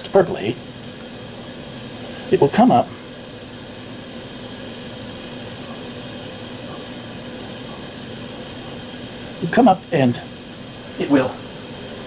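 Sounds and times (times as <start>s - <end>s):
gas burner hissing: 0.0s - 12.0s.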